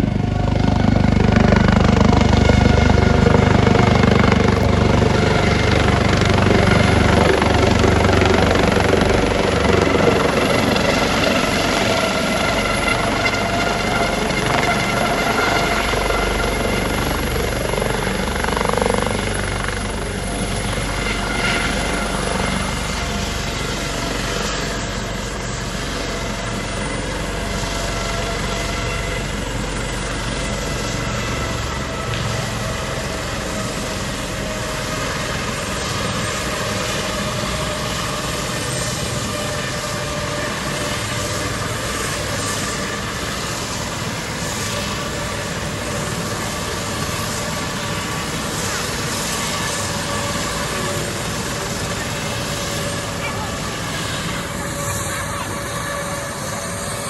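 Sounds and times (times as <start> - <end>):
helicopter rotor beat: 0.0 - 57.0
helicopter turbine whine: 0.0 - 57.0.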